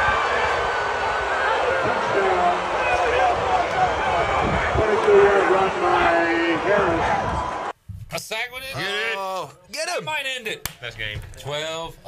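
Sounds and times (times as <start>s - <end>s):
stadium crowd shouting: 0.0s - 7.7s.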